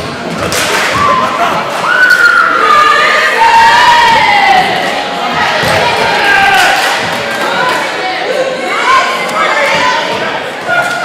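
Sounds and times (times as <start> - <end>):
crowd cheering and shouting: 0.6 - 11.0.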